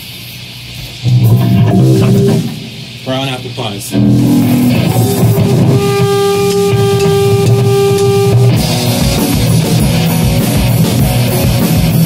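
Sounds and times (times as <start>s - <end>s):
electric guitar low riff: 0.8s - 3.2s, 3.9s - 12.0s.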